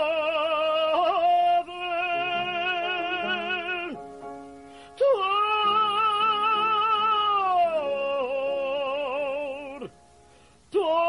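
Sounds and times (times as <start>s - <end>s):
cantor singing with vibrato: 0.0s - 11.0s
quiet held accompaniment chord: 0.0s - 11.0s.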